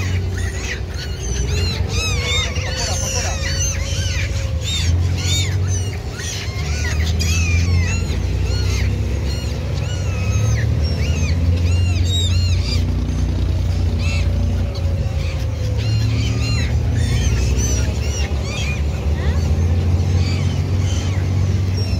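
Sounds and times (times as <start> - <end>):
gulls squawking: 0.0 - 21.9.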